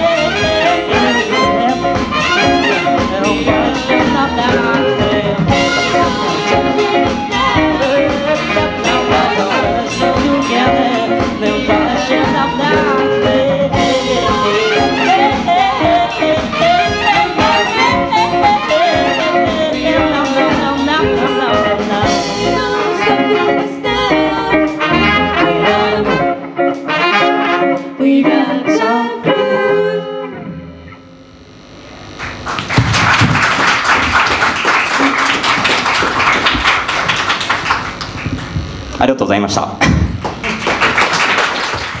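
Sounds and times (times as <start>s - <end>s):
horn section: 0.0s - 28.0s
live band playing: 0.0s - 30.9s, 32.1s - 42.0s
audience applause: 32.2s - 38.6s, 40.1s - 42.0s.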